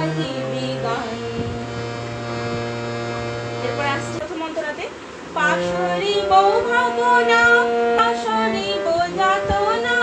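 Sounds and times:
person singing: 0.0 - 1.8
harmonium held notes: 0.0 - 10.0.

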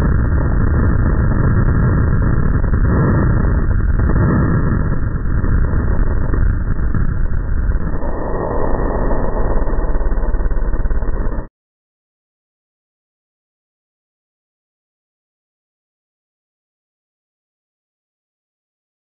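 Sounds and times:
deep steady wind rumble: 0.0 - 11.5.

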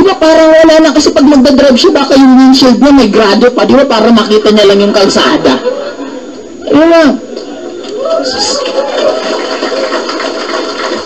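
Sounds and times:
audience laughing: 4.8 - 6.5, 8.6 - 11.0.

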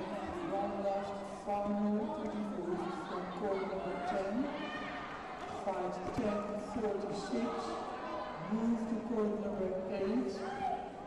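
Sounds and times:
loudspeaker announcement: 0.0 - 4.8, 5.5 - 10.8
voices echoing in a hall: 0.0 - 11.0.

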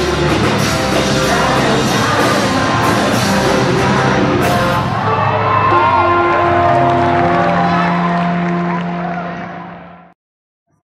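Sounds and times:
crowd shouting and whooping: 4.4 - 10.1.

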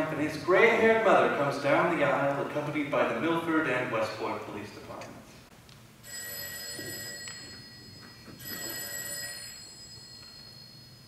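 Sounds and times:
telephone ringing: 6.0 - 11.0.

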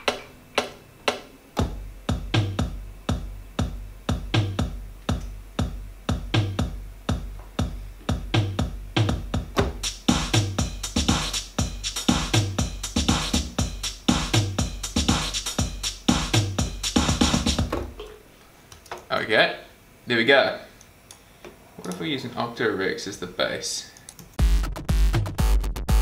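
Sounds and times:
ticking hi-hats: 0.0 - 17.7
synthesizer bass: 1.6 - 18.0
kick drum hits: 1.6 - 18.1.

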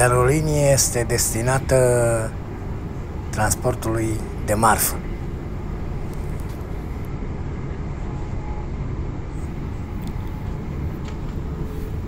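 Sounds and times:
train wheels rumbling on rails: 9.3 - 12.0.

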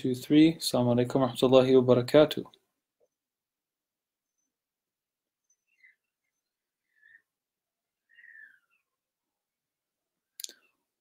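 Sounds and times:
faint high falling chirps: 8.0 - 9.0.

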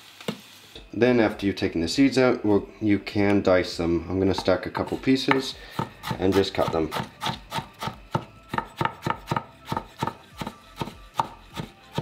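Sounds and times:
knife chopping on plastic cutting board: 4.3 - 12.0.

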